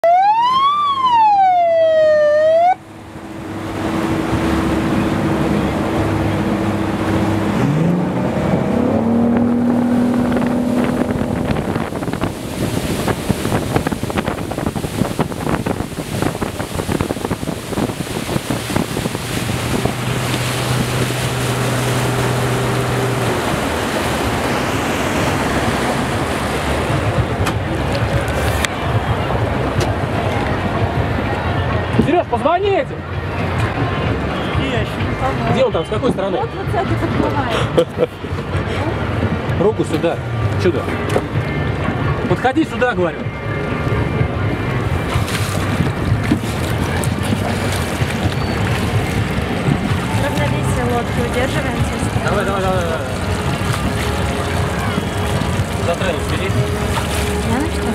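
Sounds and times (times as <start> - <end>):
siren wailing: 0.0 - 2.8
motorboat engine drone: 0.0 - 57.9
water noise: 0.0 - 57.9
wind: 0.0 - 57.9.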